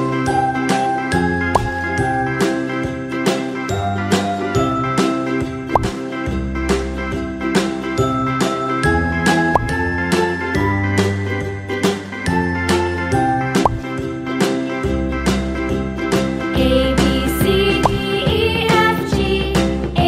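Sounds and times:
cheerful music with bell notes: 0.0 - 19.4.

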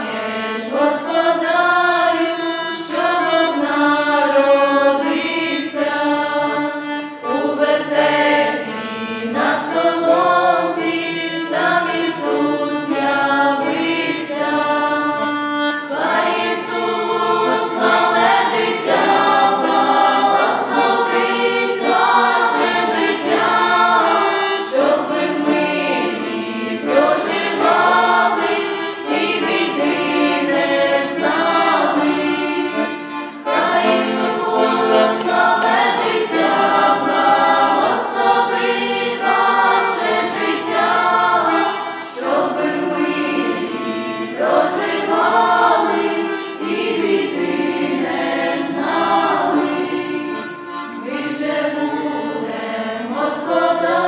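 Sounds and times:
accordion: 0.0 - 54.0
choir singing a carol: 0.0 - 54.0.

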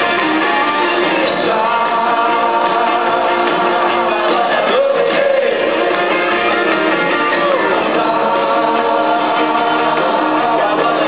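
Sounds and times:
live rock band: 0.0 - 11.0
voices singing long notes: 0.0 - 11.0.

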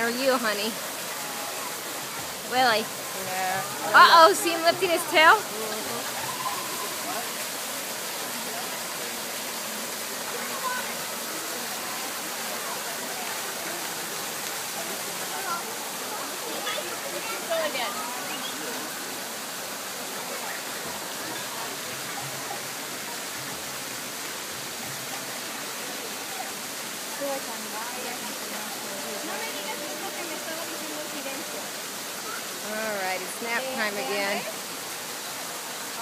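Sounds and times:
rushing water: 0.0 - 36.0.

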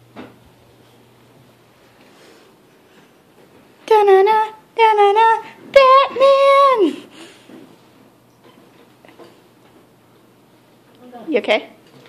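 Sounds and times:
high wordless voice singing: 3.8 - 7.1.

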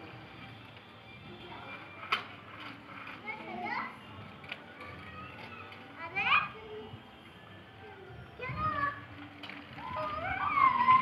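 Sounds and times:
young children calling: 9.8 - 11.0.

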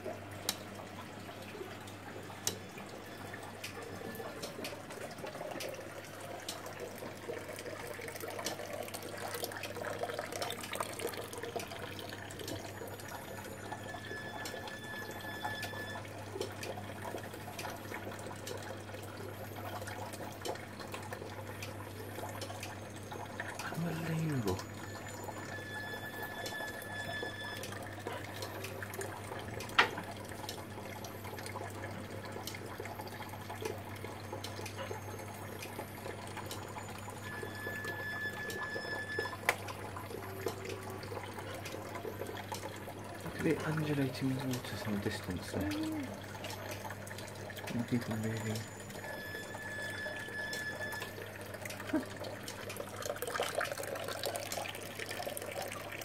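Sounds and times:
water trickling and splashing: 0.0 - 56.0.

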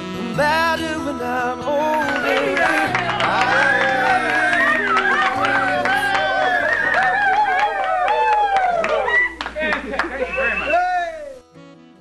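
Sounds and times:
hand claps: 2.0 - 10.6.

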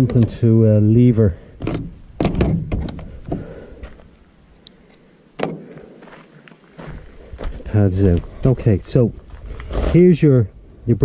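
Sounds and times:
tool case thunk: 1.6 - 3.0.

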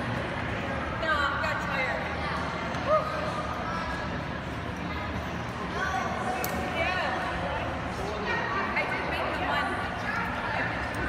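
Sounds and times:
voices talking in echoing hall: 0.0 - 11.0.

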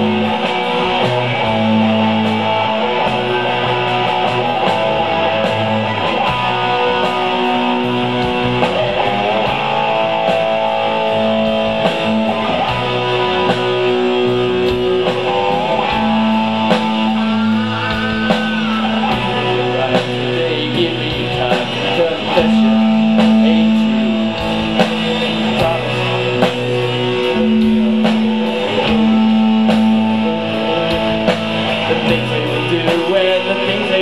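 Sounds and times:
electric bass: 0.0 - 34.0
electric guitars with bending notes: 0.0 - 34.0
steady drum beat: 0.0 - 34.0.

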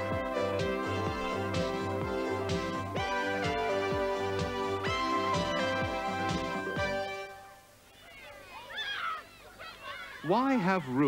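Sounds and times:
held music chord: 0.0 - 7.7
children calling and shrieking: 7.9 - 11.0.

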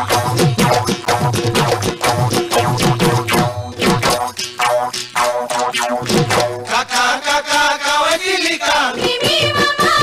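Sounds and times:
drum beats: 0.0 - 10.0
folk singing with wavering notes: 6.4 - 10.0.

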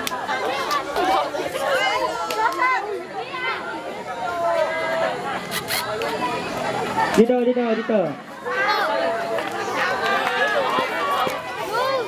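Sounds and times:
teenagers calling out and chattering: 0.0 - 12.0.

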